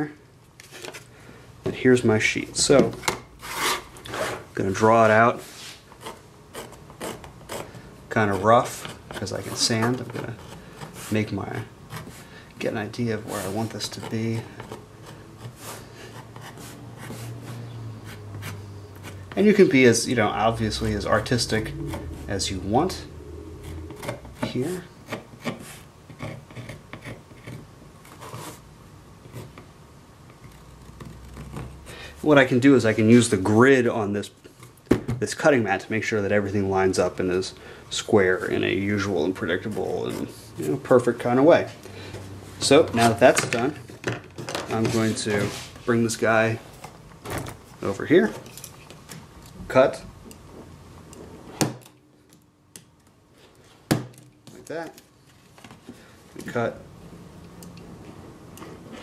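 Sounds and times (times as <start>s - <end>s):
faint scrapes: 5.3s - 6.2s, 44.7s - 46.0s
pencil scratching on plastic: 5.9s - 12.3s, 13.2s - 19.7s, 23.6s - 28.6s.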